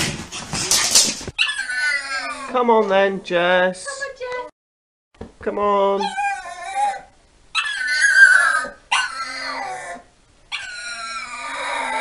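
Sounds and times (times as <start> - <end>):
dog whining: 0.9 - 2.6, 6.0 - 12.0.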